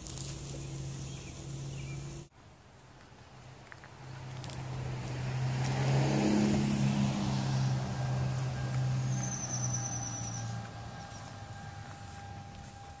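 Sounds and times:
engine idling: 6.7s - 13.0s.

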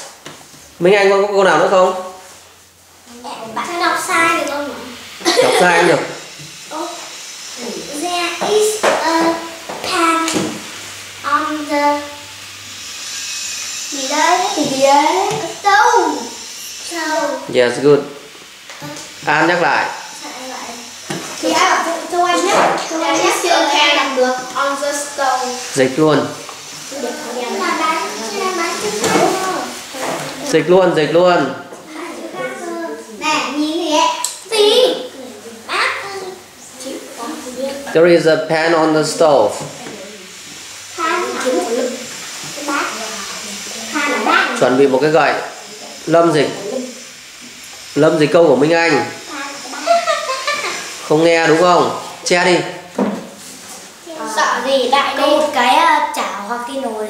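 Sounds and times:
child talking: 3.1s - 6.0s, 6.7s - 10.6s, 11.2s - 12.3s, 13.9s - 17.5s, 18.8s - 19.2s, 20.1s - 25.7s, 26.8s - 30.6s, 31.8s - 38.0s, 39.6s - 40.4s, 41.0s - 44.8s, 45.6s - 47.1s, 49.2s - 50.8s, 54.0s - 57.0s.

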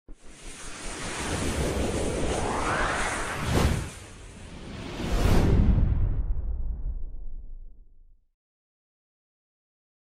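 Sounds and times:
whoosh sound effect: 0.5s - 6.0s.

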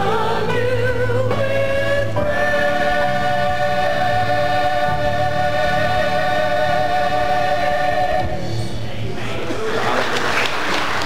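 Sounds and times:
choir singing: 0.0s - 8.8s.

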